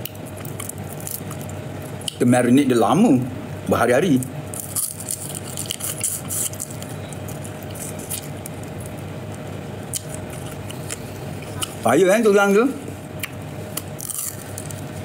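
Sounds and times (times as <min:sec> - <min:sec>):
man chewing crispy fish: 0:00.0 - 0:02.2, 0:04.5 - 0:11.8, 0:13.0 - 0:15.0.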